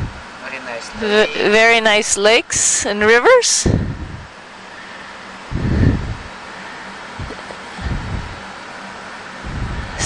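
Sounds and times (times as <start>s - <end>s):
ventilation fans hissing: 0.0s - 10.0s.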